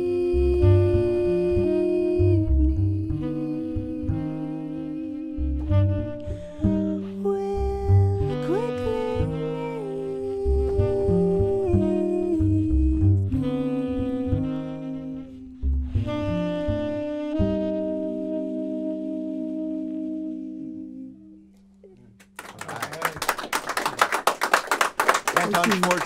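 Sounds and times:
plucked double bass: 0:00.0 - 0:17.7
tenor saxophone: 0:00.0 - 0:22.3
audience clapping: 0:22.2 - 0:26.0.

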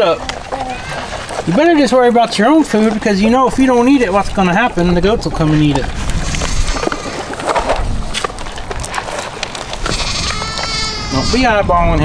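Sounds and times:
puppy crunching dry kibble: 0:00.0 - 0:11.4
goat bleating: 0:09.8 - 0:11.8.

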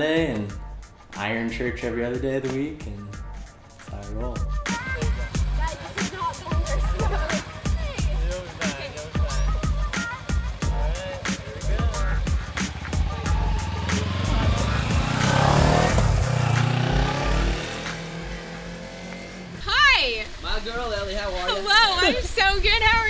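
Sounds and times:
background music with steady beat: 0:00.0 - 0:19.8
motorcycle engine pulling away: 0:04.7 - 0:19.7.

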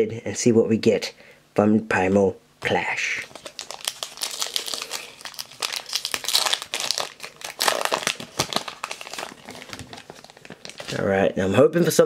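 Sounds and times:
foil wrapper crinkling and tearing: 0:03.2 - 0:11.1.

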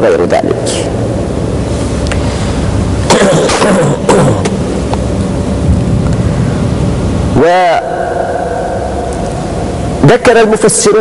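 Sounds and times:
recording hum and hiss: 0:00.0 - 0:11.0
man murmuring or clearing throat: 0:03.0 - 0:04.6.

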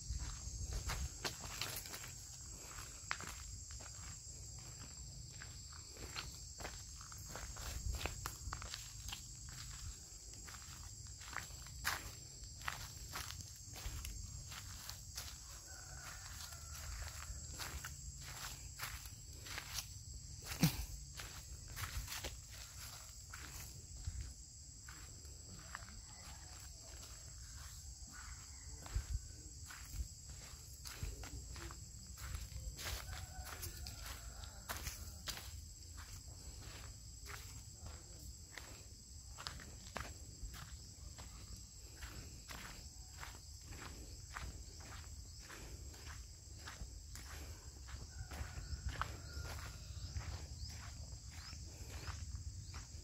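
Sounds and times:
footsteps on leafy dirt: 0:00.0 - 0:53.0
high insect drone: 0:00.0 - 0:53.0.

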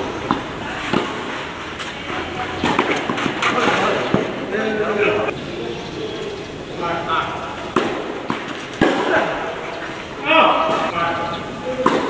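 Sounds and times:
tennis ball hitting rackets: 0:00.0 - 0:05.3, 0:07.4 - 0:12.0
people's voices: 0:00.0 - 0:12.0.

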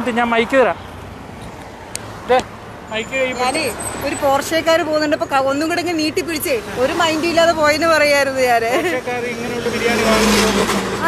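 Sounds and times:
vehicle passing by: 0:00.0 - 0:11.0.

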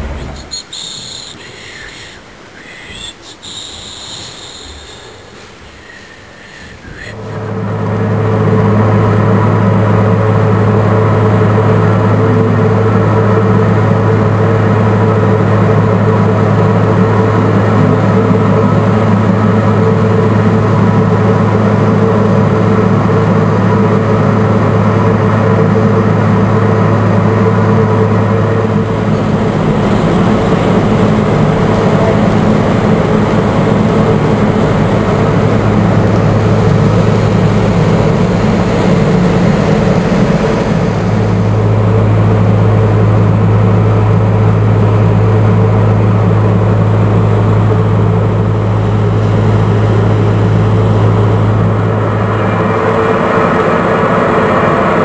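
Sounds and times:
heavy machinery droning: 0:00.0 - 0:55.0.

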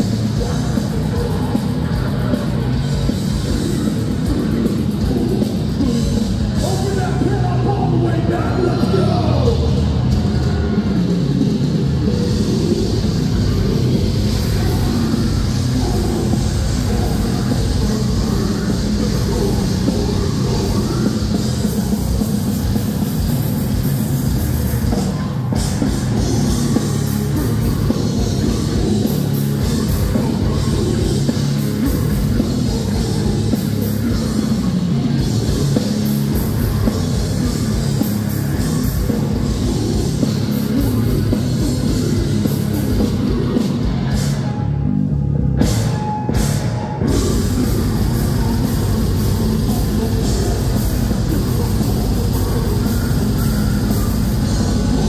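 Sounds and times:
pounding drum kit: 0:00.0 - 0:44.8, 0:45.4 - 0:55.0
distorted electric guitars: 0:00.0 - 0:55.0
metal band playing loud: 0:00.0 - 0:55.0.

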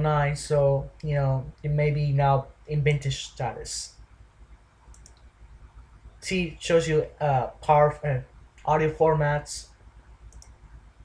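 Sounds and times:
faint low hum: 0:00.0 - 0:11.0
mouse button clicking: 0:04.9 - 0:05.3.

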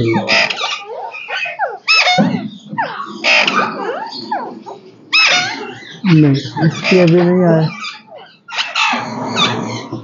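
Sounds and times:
parakeets squawking and screeching: 0:00.0 - 0:10.0.

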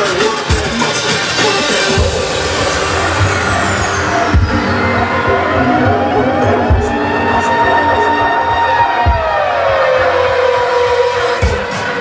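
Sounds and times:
dance music through club speakers: 0:00.0 - 0:12.0
high falling sweep: 0:01.0 - 0:12.0
rising tone: 0:01.6 - 0:12.0
heavy low thump: 0:06.7 - 0:07.0.

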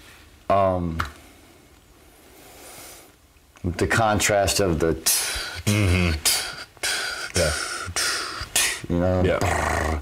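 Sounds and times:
faint airy breath hiss: 0:00.0 - 0:10.0.

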